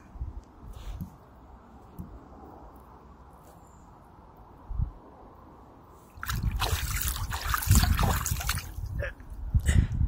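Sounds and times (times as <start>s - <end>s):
water splashing and trickling: 6.0s - 9.1s.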